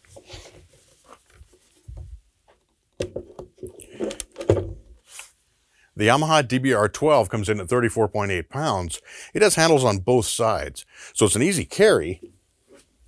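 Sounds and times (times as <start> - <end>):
speaker handling rustling: 0.0 - 5.3.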